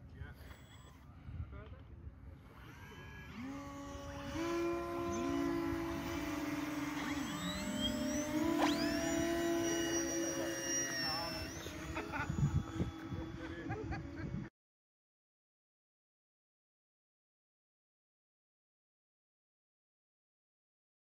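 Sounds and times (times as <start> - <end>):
electric motors and propellers whining: 0.2 - 1.6, 2.2 - 14.5
high whine climbing steeply: 2.6 - 14.5.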